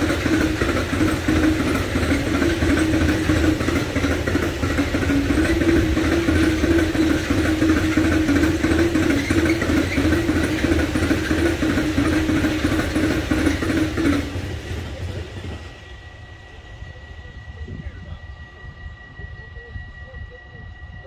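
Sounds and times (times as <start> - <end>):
freight train rumbling past: 0.0 - 21.0
wavering hum: 0.0 - 21.0.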